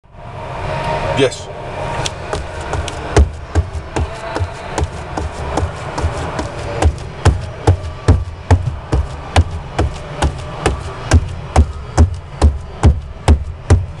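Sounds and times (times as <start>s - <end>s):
low vehicle rumble: 0.1s - 14.0s
sneakers stomping on rubber floor: 2.3s - 14.0s.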